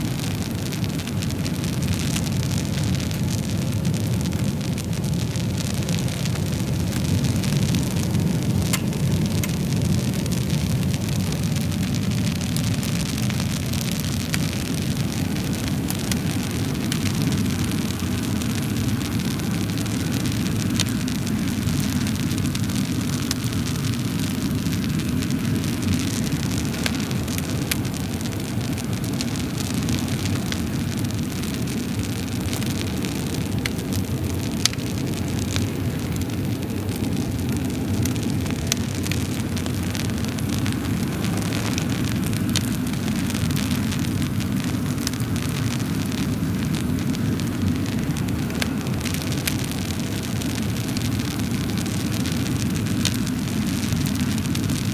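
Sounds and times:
fire crackles and pops: 0:00.0 - 0:54.9
wood fire burning in stove: 0:00.0 - 0:54.9.

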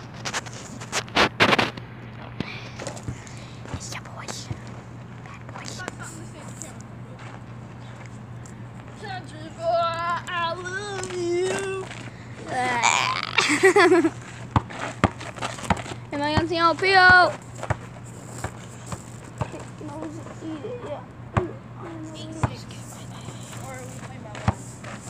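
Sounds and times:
basketball bouncing on dirt: 0:00.8 - 0:04.8, 0:14.2 - 0:20.5, 0:21.3 - 0:25.0
children calling out: 0:09.2 - 0:13.9.

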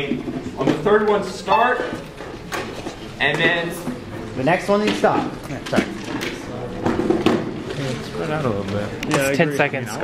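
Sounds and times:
people talking in echoing hall: 0:00.0 - 0:10.0.

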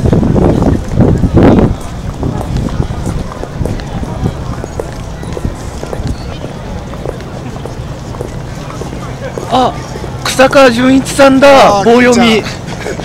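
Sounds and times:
footsteps on pavement: 0:00.0 - 0:13.0
people's voices: 0:00.0 - 0:13.0.

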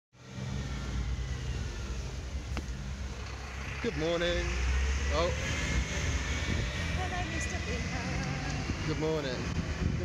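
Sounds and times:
street traffic rumble: 0:00.2 - 0:10.0.

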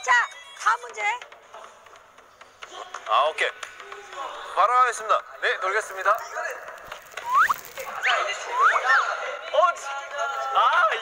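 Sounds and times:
shoe soles squeaking on floor: 0:06.8 - 0:08.8.

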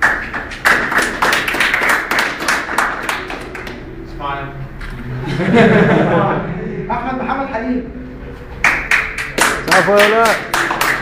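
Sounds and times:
people clapping: 0:00.0 - 0:03.9, 0:08.5 - 0:11.0.

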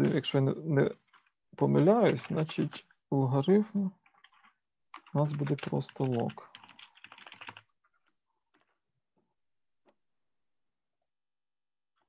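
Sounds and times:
typing on computer keyboard: 0:04.0 - 0:08.7.

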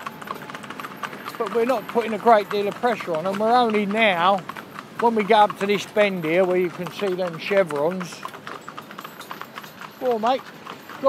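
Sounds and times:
hooves clip-clopping on tarmac: 0:00.0 - 0:11.0.

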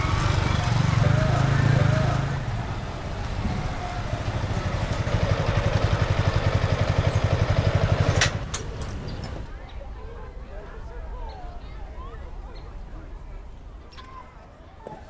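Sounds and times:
motorcycle engine putter: 0:07.2 - 0:09.4.

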